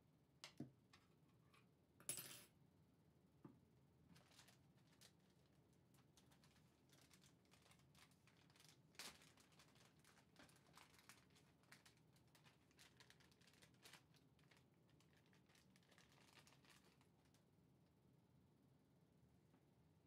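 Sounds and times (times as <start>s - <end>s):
plastic packaging crinkling: 4.1s - 17.4s.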